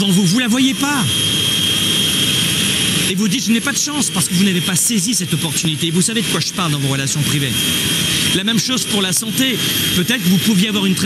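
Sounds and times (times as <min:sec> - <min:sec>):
jet engine whine and rush: 0:00.0 - 0:11.0.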